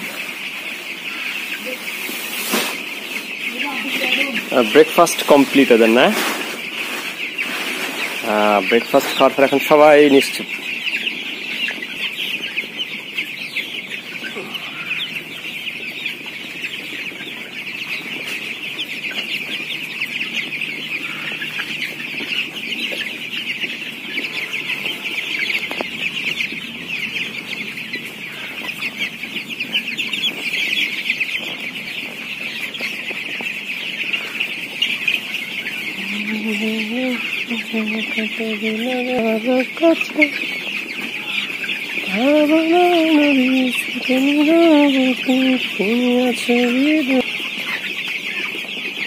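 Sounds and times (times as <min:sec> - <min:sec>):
chicks peeping: 0:00.0 - 0:49.0.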